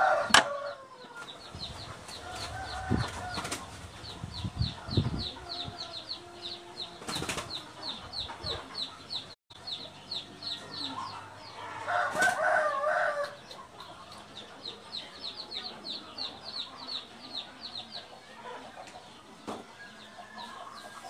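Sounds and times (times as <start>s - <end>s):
bird chirping: 1.0s - 21.0s.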